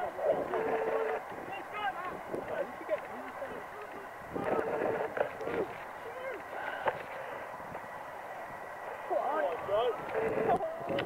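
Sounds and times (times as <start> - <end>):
steady outdoor hiss: 0.0 - 11.0.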